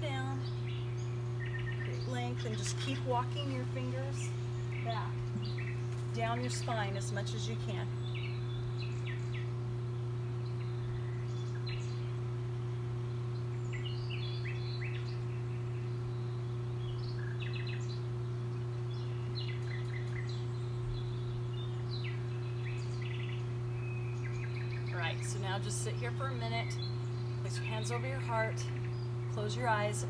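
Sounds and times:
birds chirping: 0.0s - 30.0s
steady low hum: 0.0s - 30.0s.

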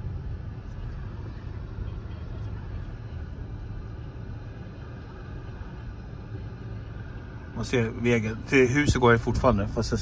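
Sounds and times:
tyres rumbling on road: 0.0s - 10.0s.

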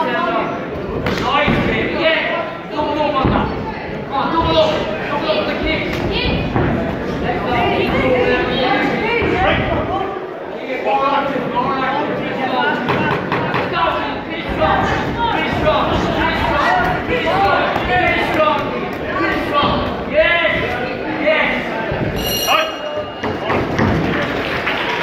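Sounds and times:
high-pitched ring: 22.2s - 23.2s.

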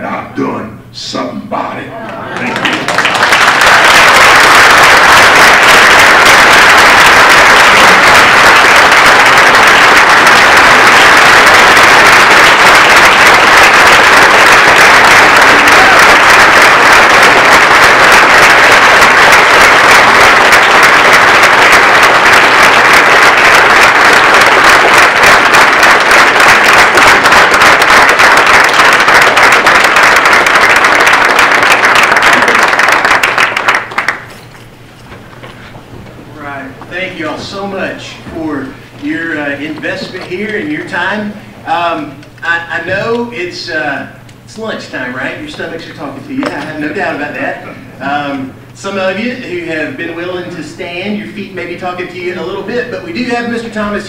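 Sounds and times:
audience applauding: 2.1s - 34.3s.

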